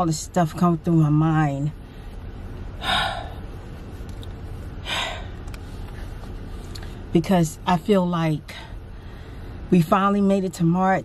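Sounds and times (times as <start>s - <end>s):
low steady hum: 0.0s - 11.0s
woman breathing heavily: 1.8s - 3.7s, 4.6s - 7.1s, 8.6s - 9.7s.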